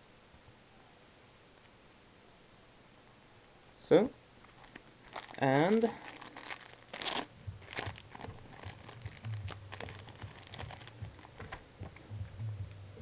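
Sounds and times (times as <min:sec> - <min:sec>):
plastic card sleeves crinkling: 0:04.5 - 0:11.6.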